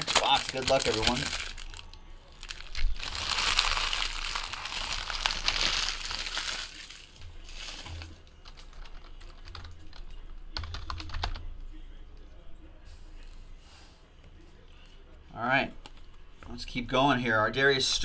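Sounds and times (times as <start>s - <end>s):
wrapper crinkling: 0.0s - 9.4s.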